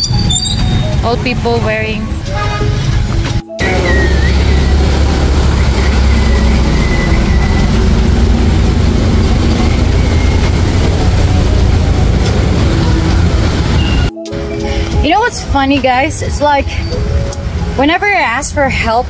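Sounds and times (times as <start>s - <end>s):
steady deep rumble: 0.0s - 16.6s
cars and motorbikes passing: 0.0s - 19.0s.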